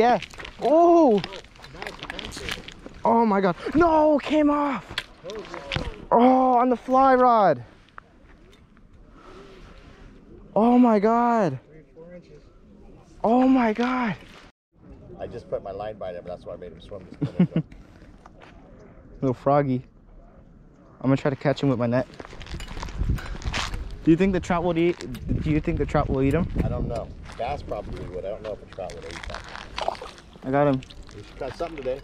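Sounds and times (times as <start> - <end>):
footsteps on gravelly dirt: 0.0 - 6.1, 22.0 - 32.0
faint outdoor background noise: 0.0 - 32.0.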